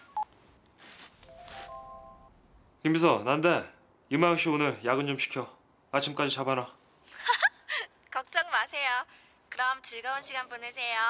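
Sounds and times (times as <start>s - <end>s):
steady chord of held tones: 1.3s - 2.4s.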